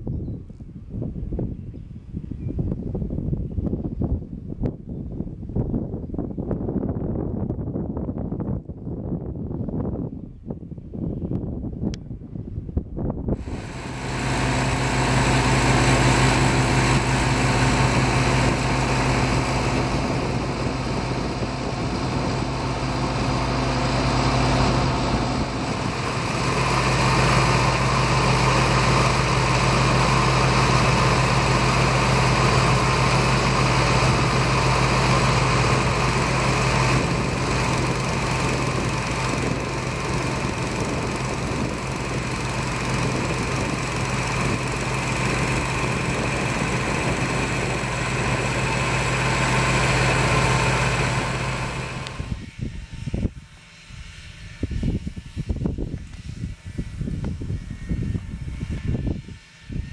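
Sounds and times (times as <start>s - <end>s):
small engine running: 13.4s - 59.9s.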